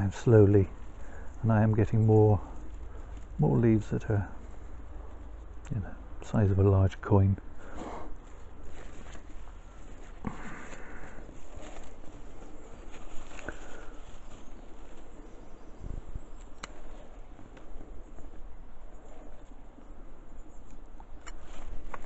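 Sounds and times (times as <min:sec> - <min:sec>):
leaves rustling: 0:00.0 - 0:22.0.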